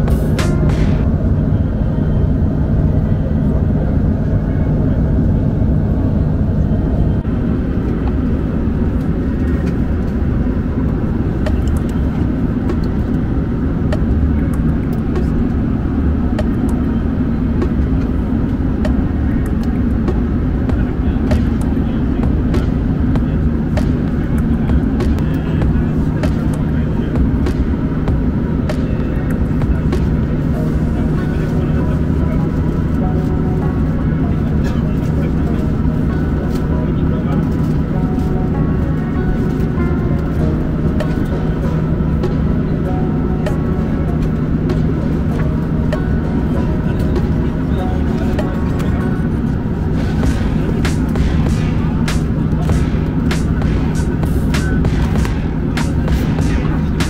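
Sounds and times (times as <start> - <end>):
airplane cabin engine drone: 0.0 - 57.0.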